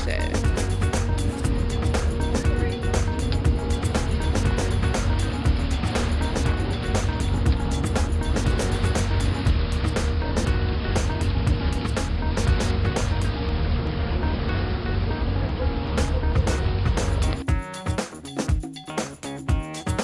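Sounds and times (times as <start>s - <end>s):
boat engine rumble: 0.0s - 18.4s
music: 0.0s - 20.0s.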